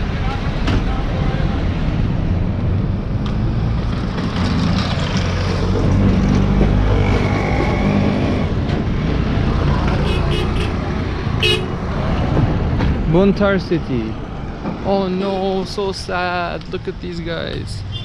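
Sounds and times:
truck and car engines running: 0.0 - 18.0
vehicle horn: 10.0 - 10.8, 11.4 - 11.8.

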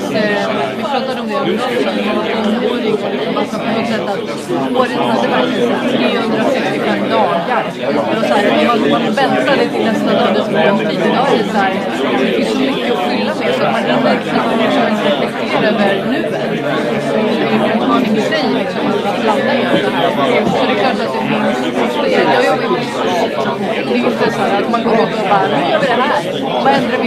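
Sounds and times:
hubbub of overlapping voices: 0.0 - 27.0.

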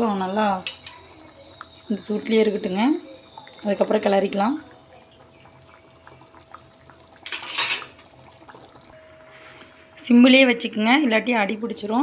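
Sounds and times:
curry simmering in a pan: 0.0 - 12.0
metal ladle scraping a pan: 7.3 - 7.9.

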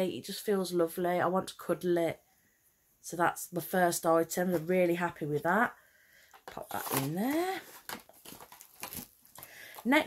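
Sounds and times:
woman speaking: 0.0 - 2.2, 3.0 - 5.8, 6.5 - 7.8, 9.8 - 10.0
cardboard boxes tapping and rustling: 6.4 - 9.8.

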